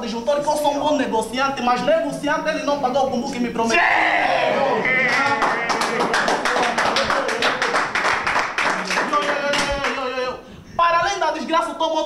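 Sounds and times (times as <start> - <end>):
voices calling out: 3.7 - 6.5
group clapping quickly: 5.0 - 10.0.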